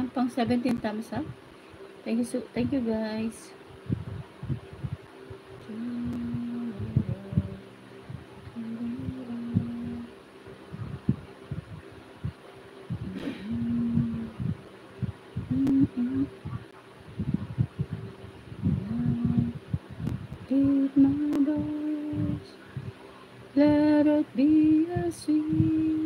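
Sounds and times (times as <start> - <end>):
person humming: 5.6 - 7.7, 8.5 - 10.1, 13.0 - 14.6, 15.4 - 16.6, 18.6 - 19.6, 20.5 - 22.6.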